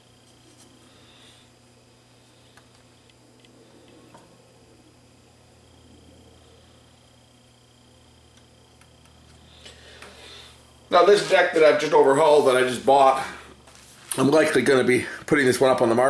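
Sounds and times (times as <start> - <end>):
low hum: 0.0 - 13.9
small ticks and clicks: 8.3 - 10.1.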